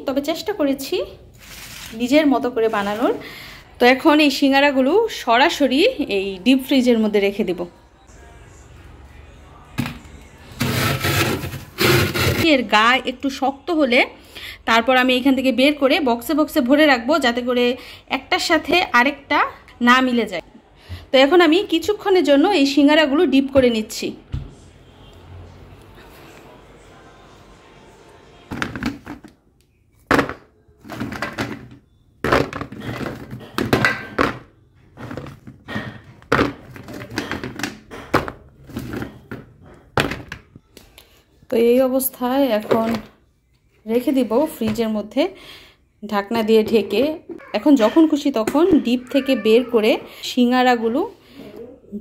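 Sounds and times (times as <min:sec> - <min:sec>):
rustling and scraping of tray: 0:01.4 - 0:03.2, 0:10.5 - 0:12.6, 0:30.8 - 0:40.4
frozen food thunking into plastic container: 0:30.1 - 0:34.5.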